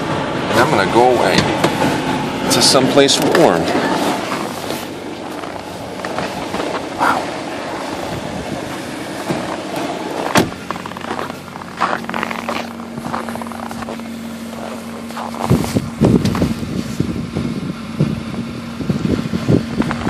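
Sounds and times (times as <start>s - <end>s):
car engine idling: 0.0s - 20.0s
exhaust rumble: 0.0s - 20.0s
short engine knocks: 9.2s - 11.2s.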